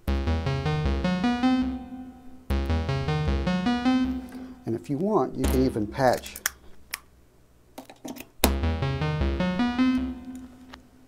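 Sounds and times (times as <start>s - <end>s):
synth rising note sequence: 0.1s - 4.3s.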